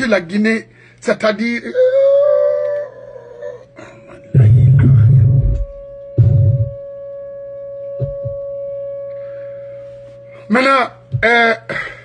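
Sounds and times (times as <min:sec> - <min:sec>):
man laughing high-pitched: 0:11.2 - 0:12.0.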